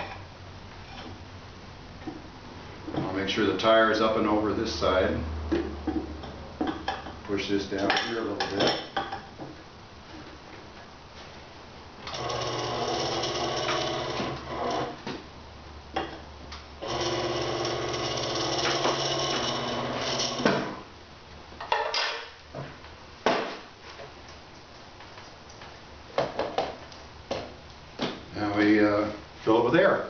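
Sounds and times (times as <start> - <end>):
tire changer motor humming: 12.0 - 15.0, 16.8 - 20.9.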